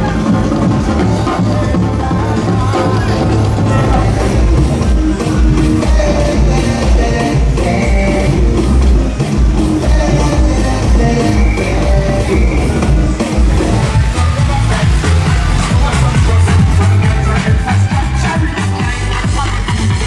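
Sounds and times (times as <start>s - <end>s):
music with heavy bass beat: 0.0s - 20.0s.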